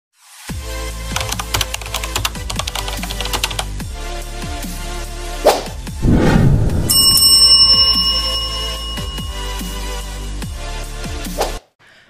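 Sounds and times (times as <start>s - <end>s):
heavy low hit: 5.9s - 7.9s
electronic intro music: 6.0s - 10.7s
bright bell ding: 6.9s - 10.3s.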